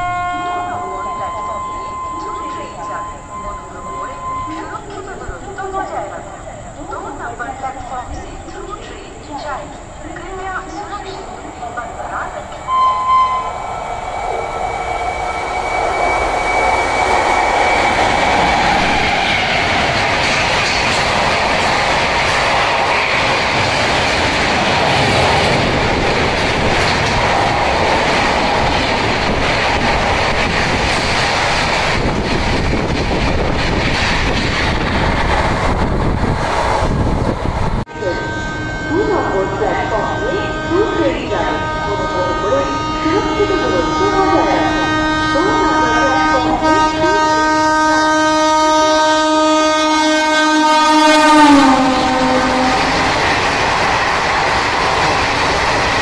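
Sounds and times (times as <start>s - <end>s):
distant train horn: 0.0s - 6.4s, 8.8s - 21.2s, 37.8s - 53.8s
train rushing on rails: 0.0s - 56.0s.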